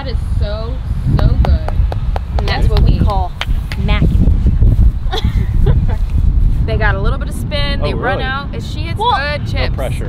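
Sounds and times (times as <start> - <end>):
steady low rumble: 0.0 - 10.0
person speaking: 2.4 - 4.0, 7.8 - 8.5.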